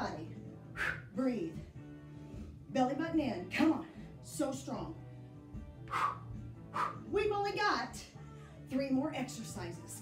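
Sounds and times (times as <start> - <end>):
workout music: 0.0 - 10.0.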